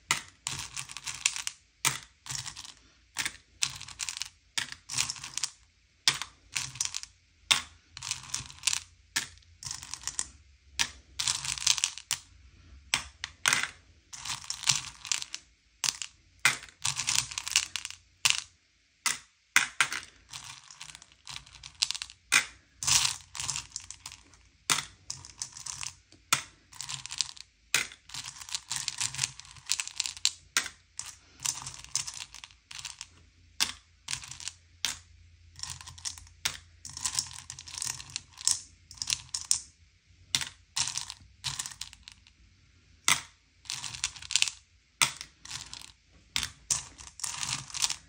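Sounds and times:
candies clattering in a bowl: 0.1 - 12.2, 12.9 - 18.5, 19.6 - 35.0, 35.6 - 39.7, 40.3 - 42.2, 43.1 - 48.0
candies dropped into plastic cups: 0.1 - 12.2, 12.9 - 18.5, 19.1 - 35.0, 40.3 - 42.3, 43.1 - 48.0.

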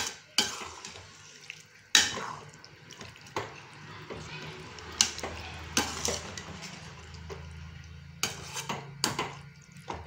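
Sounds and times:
metal spatula scraping pan: 5.0 - 7.0, 8.2 - 9.4.

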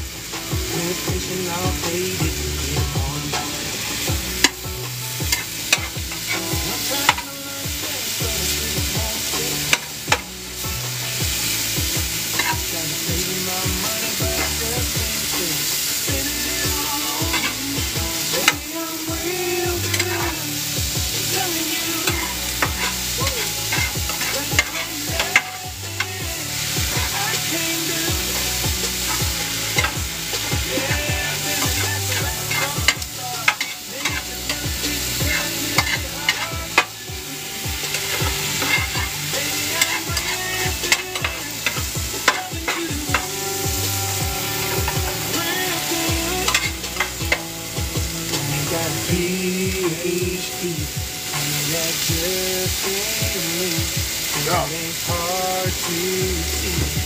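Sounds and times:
food sizzling in a pan: 0.0 - 57.0.

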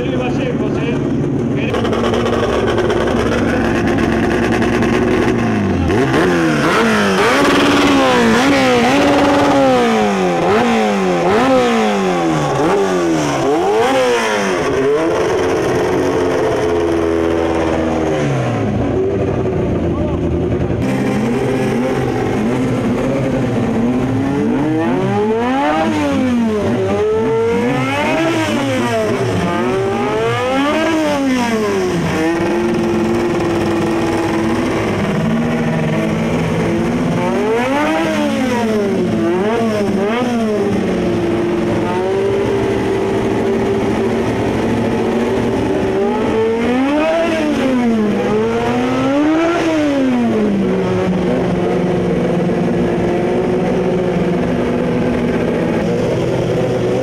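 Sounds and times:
race car engines idling: 0.0 - 57.0
race car engines revving: 0.0 - 57.0.

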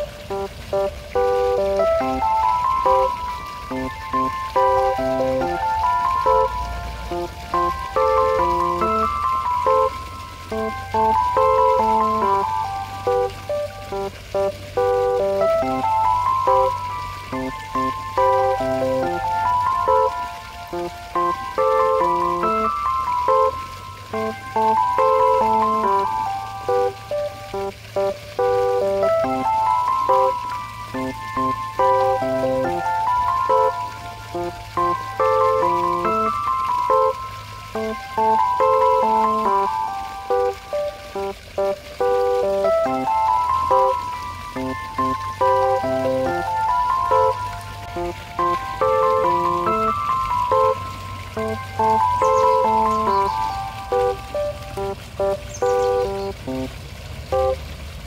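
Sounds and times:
low steady tone: 0.0 - 56.7, 57.3 - 57.6
instrumental melody: 0.0 - 57.6.

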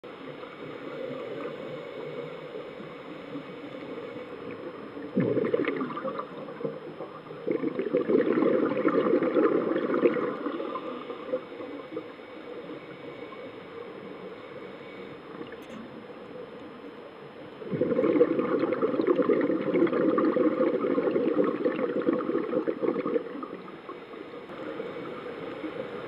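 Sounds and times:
steady low hiss: 0.0 - 26.0
underwater bubbles rushing: 0.1 - 14.4, 17.5 - 26.0.

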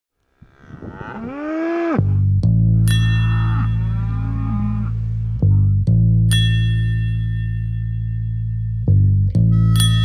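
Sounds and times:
cow mooing: 0.3 - 5.7.

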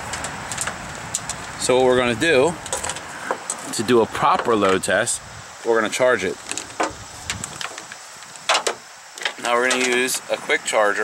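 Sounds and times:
sharp plastic knocks: 6.5 - 7.8, 8.5 - 10.0.

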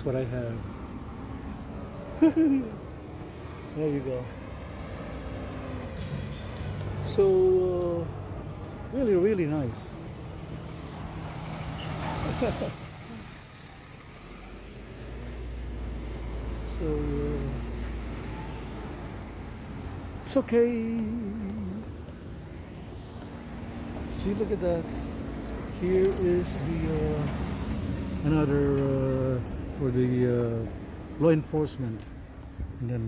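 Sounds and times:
street traffic rumble: 0.0 - 33.0.

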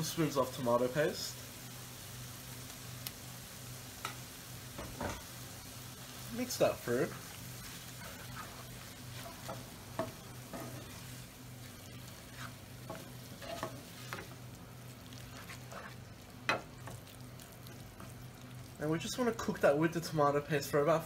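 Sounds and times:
food sizzling in a frying pan: 0.0 - 21.0
spatula scraping a pan: 6.8 - 14.4, 15.1 - 17.0.

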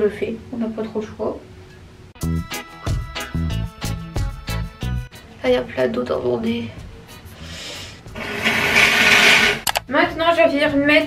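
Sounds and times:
person blowing nose: 7.4 - 9.6
short clicks: 9.6 - 9.9.

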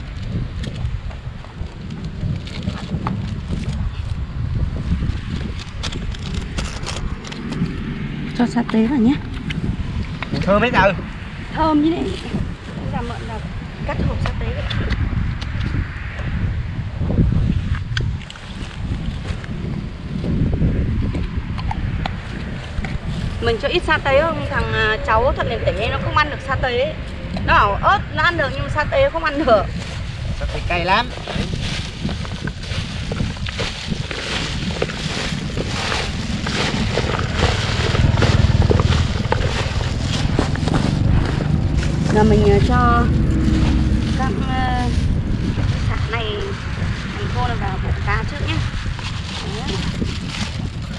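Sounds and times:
wind buffeting microphone: 0.0 - 50.9
rustling of stalks and plastic gloves: 29.5 - 50.9.

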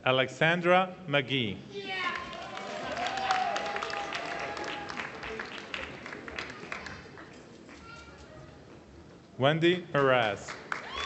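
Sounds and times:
crowd applauding: 2.1 - 7.8, 10.0 - 11.0.

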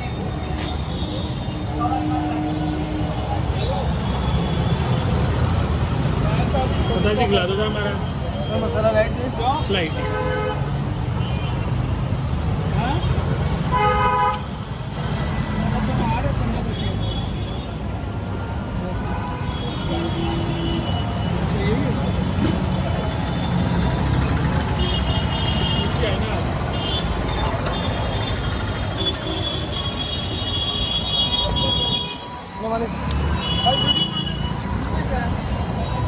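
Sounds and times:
rumble of traffic engines: 0.0 - 36.0
voices of passers-by: 0.0 - 36.0
vehicle horns tooting: 13.7 - 14.5, 33.3 - 34.6.

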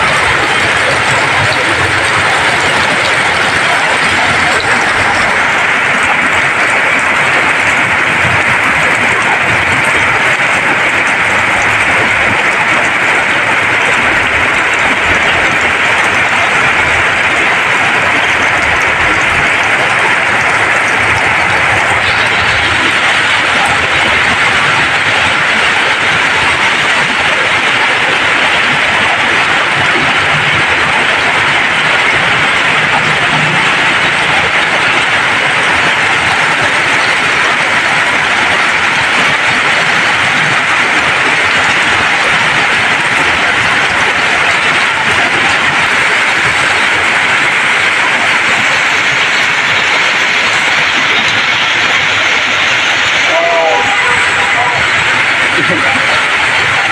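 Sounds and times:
heavy rain hissing: 0.0 - 56.9
vehicles splashing through water: 0.0 - 56.9.

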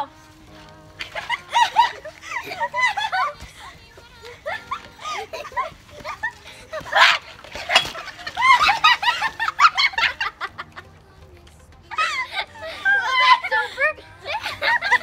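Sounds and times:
girls laughing hard: 0.0 - 11.0, 11.8 - 15.0.

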